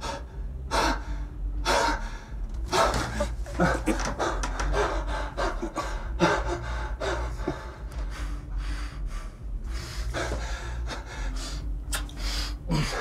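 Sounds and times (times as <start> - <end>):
man breathing heavily: 0.0 - 13.0
steady low hum: 0.0 - 13.0.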